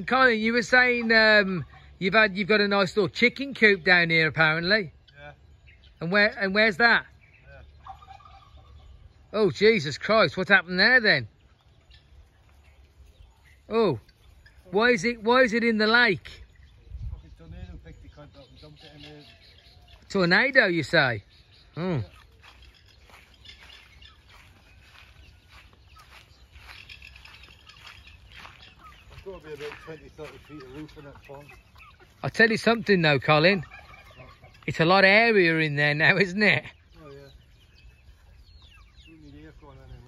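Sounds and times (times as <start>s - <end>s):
distant fowl calling: 0.0s - 16.9s, 17.9s - 40.0s
low outdoor background: 0.0s - 40.0s.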